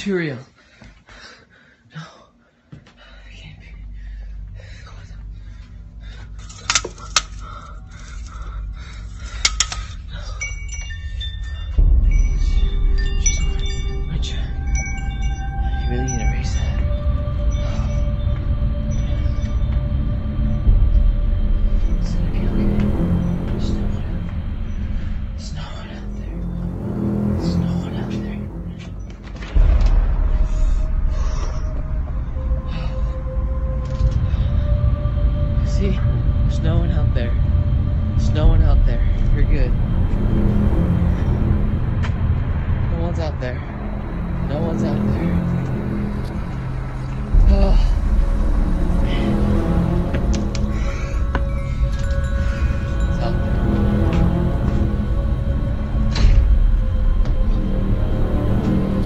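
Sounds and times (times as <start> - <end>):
faint hum: 3.0 - 59.0
loud steady low rumble: 3.4 - 59.0
chimes ringing: 6.3 - 59.0.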